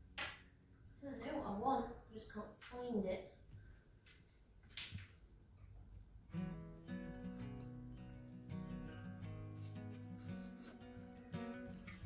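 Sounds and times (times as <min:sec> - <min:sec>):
acoustic guitar plucked notes: 0:06.3 - 0:12.0.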